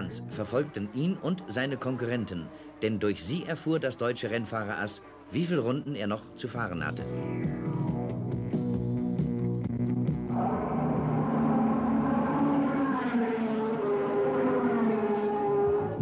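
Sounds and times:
background music: 0.0s - 16.0s
racing motorcycle engine passing: 10.3s - 16.0s.

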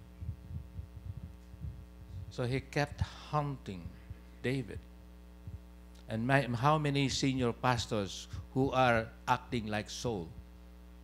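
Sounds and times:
faint low thumps: 0.0s - 3.2s, 5.4s - 5.8s
low electrical hum: 0.0s - 11.0s.

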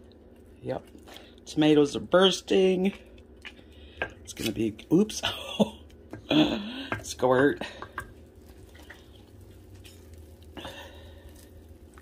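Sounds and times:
low steady hum: 0.0s - 12.0s
spoon squishing tomatoes: 7.0s - 12.0s.

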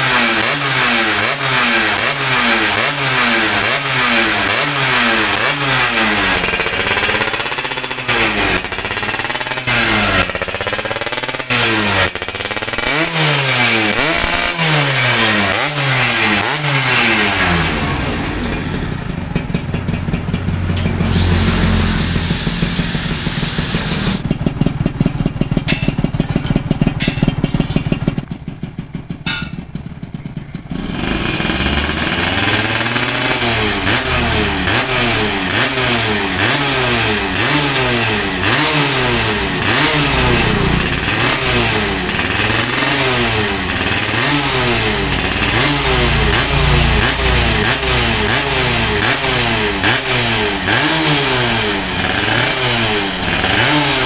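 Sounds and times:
moped engine revving: 0.0s - 54.0s.

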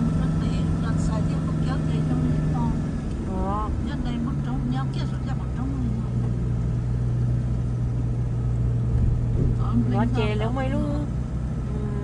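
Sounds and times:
car engine hum: 0.0s - 12.0s
road noise: 0.0s - 12.0s.

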